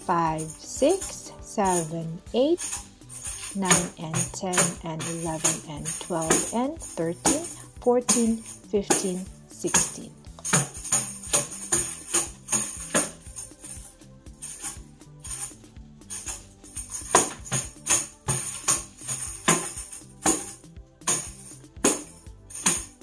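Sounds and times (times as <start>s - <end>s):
background music: 0.0s - 23.0s
tambourine taps and jingles: 0.0s - 23.0s.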